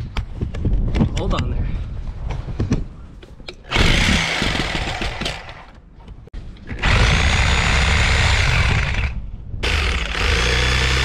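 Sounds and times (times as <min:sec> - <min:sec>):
reciprocating saw cutting rubber tire: 0:03.6 - 0:05.7, 0:06.7 - 0:11.0.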